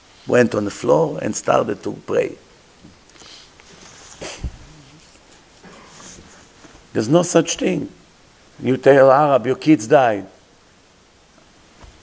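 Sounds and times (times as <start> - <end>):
man breathing close to microphone: 3.1 - 6.9
low thump: 4.4 - 4.7
low wavering voiced sound: 4.5 - 5.2.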